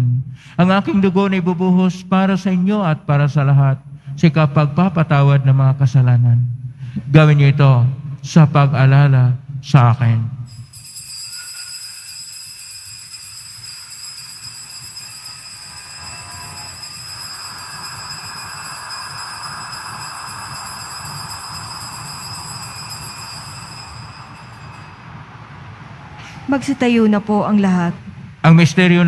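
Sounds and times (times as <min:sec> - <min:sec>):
bells ringing: 0:10.5 - 0:25.9.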